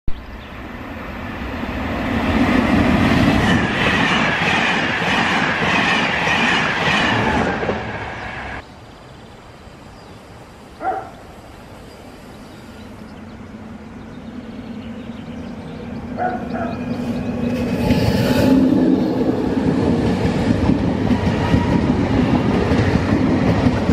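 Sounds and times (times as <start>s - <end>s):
passenger train approaching: 0.1s - 8.6s, 10.8s - 23.9s
train rumbling and wheel clatter: 0.1s - 8.6s, 10.8s - 23.9s.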